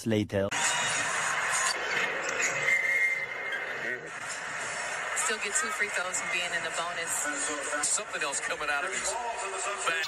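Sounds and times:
arena crowd noise: 0:00.5 - 0:10.0
referee's whistle: 0:02.4 - 0:03.7.

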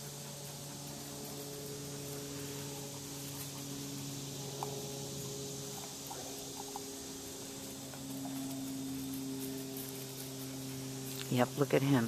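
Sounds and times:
low even hum: 0:00.0 - 0:12.0.

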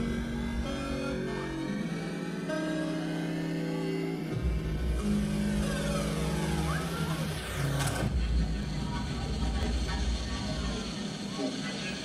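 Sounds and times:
held synth chord: 0:00.0 - 0:08.2.

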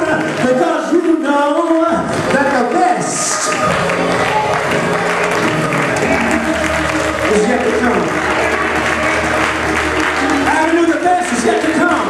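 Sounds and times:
preacher chanting sermon: 0:00.0 - 0:04.0, 0:06.0 - 0:12.0
backing music: 0:00.0 - 0:12.0
congregation clapping: 0:00.0 - 0:12.0.

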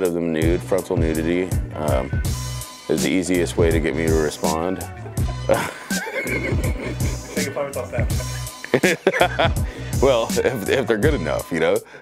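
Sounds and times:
music with bass beat: 0:00.4 - 0:11.6
high wavering cry: 0:04.8 - 0:07.4.

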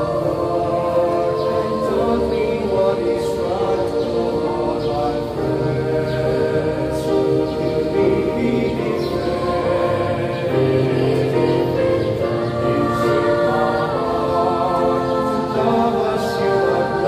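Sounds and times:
choir singing a slow hymn: 0:00.0 - 0:17.0.

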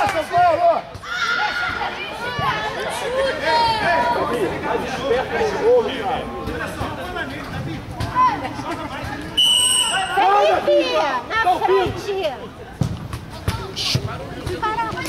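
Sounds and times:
people calling and chattering: 0:00.0 - 0:15.0
referee's whistle blast: 0:09.4 - 0:10.2.

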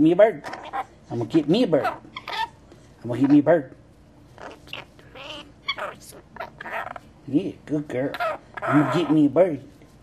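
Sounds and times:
lorikeet chattering: 0:04.4 - 0:07.0, 0:08.1 - 0:09.2.

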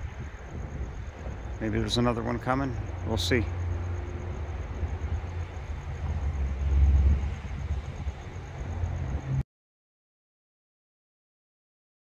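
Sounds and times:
freight train rumbling on track: 0:00.0 - 0:09.4.

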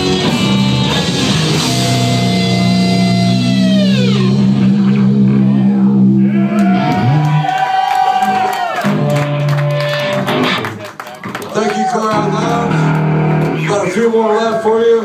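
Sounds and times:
metal band playing live: 0:00.0 - 0:07.3, 0:08.8 - 0:10.8, 0:12.0 - 0:15.0
guitar notes sliding down: 0:00.0 - 0:07.4, 0:12.1 - 0:13.8.

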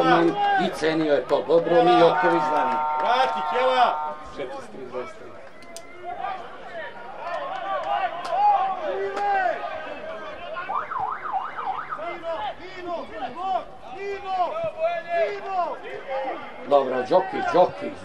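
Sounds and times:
voices calling and shouting: 0:00.0 - 0:18.0
wavering call: 0:01.7 - 0:04.8.

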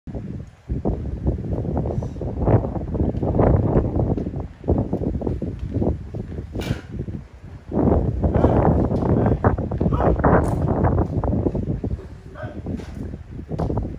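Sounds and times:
wind buffeting microphone: 0:00.1 - 0:13.9.

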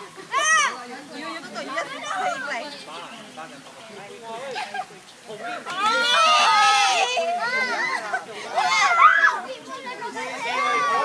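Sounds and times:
children squealing and chattering: 0:00.0 - 0:11.0.

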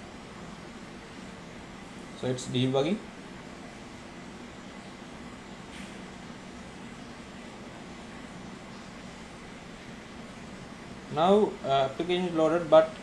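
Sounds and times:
low hiss and hum: 0:00.0 - 0:13.0.

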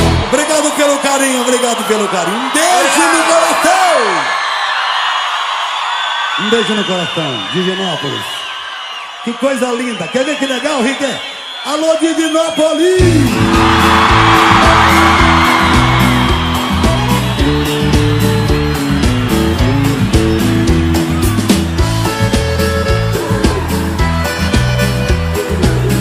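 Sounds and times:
live band music: 0:00.0 - 0:00.3, 0:13.0 - 0:26.0
crowd cheering: 0:00.0 - 0:26.0.

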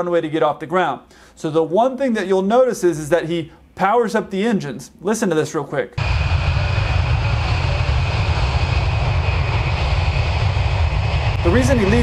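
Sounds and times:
jet engines rumbling and whining: 0:06.0 - 0:12.0.

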